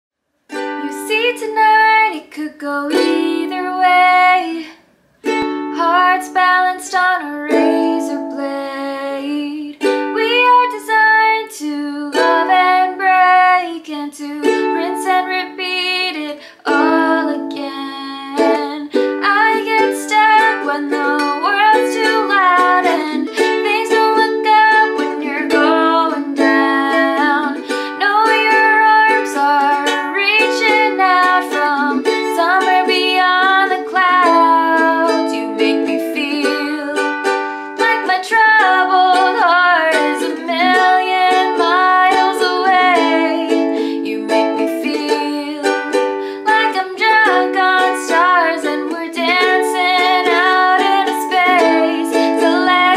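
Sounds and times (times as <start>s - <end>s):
strummed ukulele: 0.5s - 52.9s
woman singing pop song: 0.8s - 4.8s, 5.7s - 37.1s, 37.7s - 52.9s.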